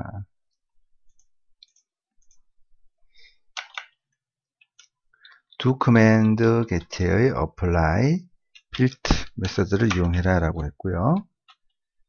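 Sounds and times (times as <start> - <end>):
computer mouse clicking: 3.5 - 4.0.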